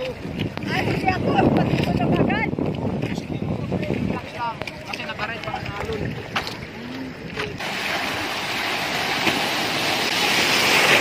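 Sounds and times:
small water splashes: 0.0 - 11.0
wave whitewater rushing in: 5.4 - 11.0.

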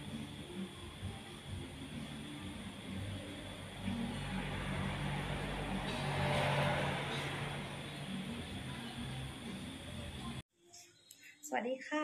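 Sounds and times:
road noise: 0.0 - 10.4
vehicle engine hum: 0.0 - 10.4.

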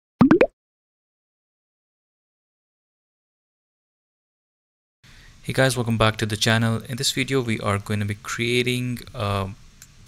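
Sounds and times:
cartoon pop sound effects: 0.2 - 0.5.

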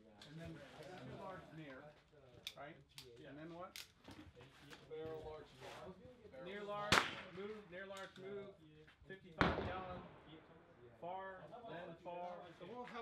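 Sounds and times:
rifle shot: 6.9 - 7.3, 9.4 - 10.4.

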